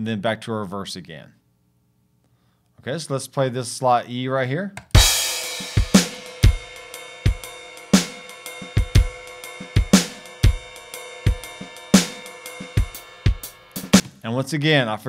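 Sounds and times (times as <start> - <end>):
synth drum shuffle groove: 4.9 - 14.2
crash cymbal: 5.0 - 14.0.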